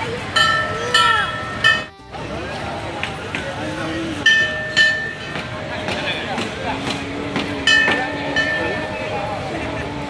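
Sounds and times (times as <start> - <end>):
crowd chatter: 0.0 - 10.0
metal bell ringing: 0.3 - 1.9, 4.2 - 5.4, 7.7 - 9.0.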